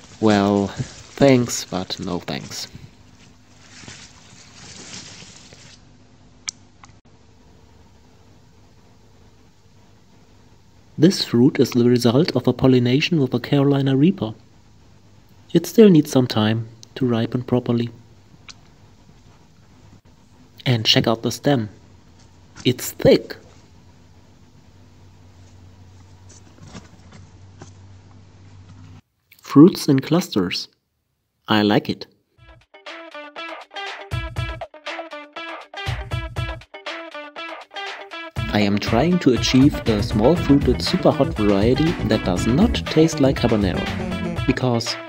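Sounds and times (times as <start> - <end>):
leaves rustling: 0.0 - 6.0
faint steady hum: 0.0 - 32.4.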